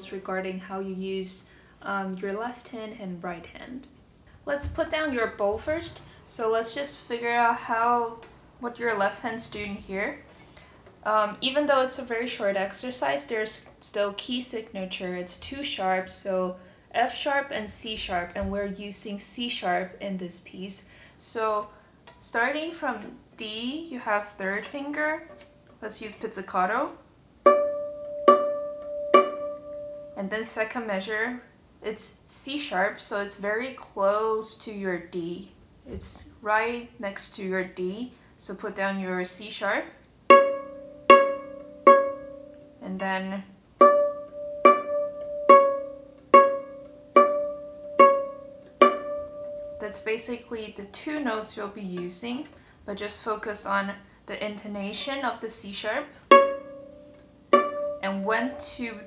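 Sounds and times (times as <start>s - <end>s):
viola plucked pizzicato: 27.4s - 30.2s, 40.3s - 42.8s, 43.8s - 50.0s, 56.0s - 59.0s.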